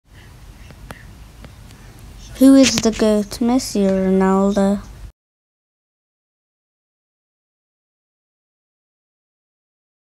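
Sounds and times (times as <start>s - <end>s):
background hiss: 0.1s - 5.1s.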